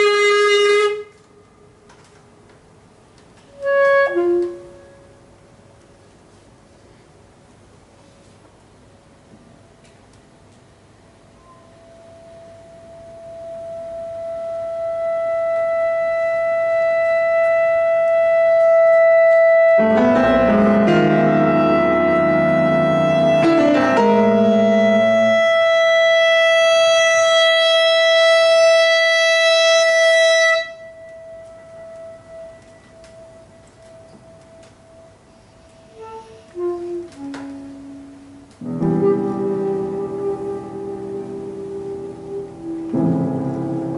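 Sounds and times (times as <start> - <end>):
clarinet holding long note: 0.0 - 1.3, 3.5 - 5.3, 11.4 - 43.9.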